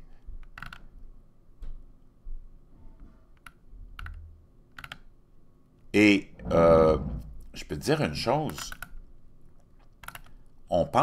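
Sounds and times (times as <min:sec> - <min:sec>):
sharp computer mouse clicks: 0:08.4 - 0:09.0, 0:09.9 - 0:10.4.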